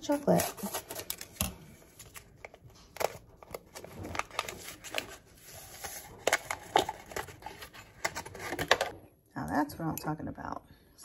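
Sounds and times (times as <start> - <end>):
paper packet crinkling and tearing: 0.0 - 8.8.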